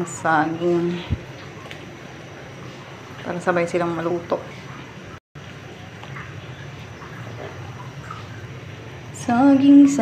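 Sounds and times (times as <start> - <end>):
broth boiling in a pot: 0.0 - 10.0.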